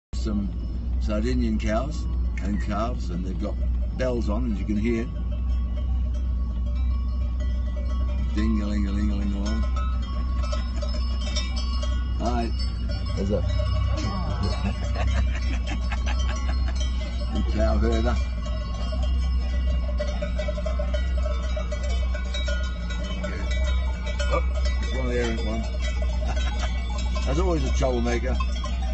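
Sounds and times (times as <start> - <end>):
car engine rumble: 0.2 - 28.9
cowbells clanking: 0.2 - 28.9
steady low hum: 0.2 - 28.9.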